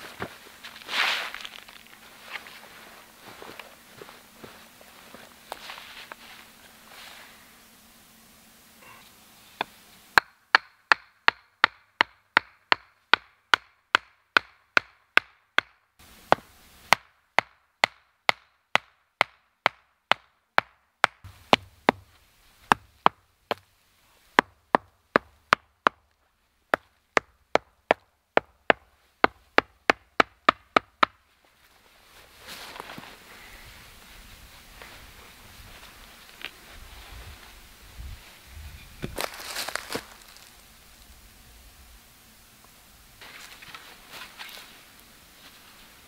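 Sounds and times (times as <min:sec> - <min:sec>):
stake being hammered into ground: 0:09.6 - 0:23.6, 0:24.4 - 0:26.0, 0:26.7 - 0:31.2.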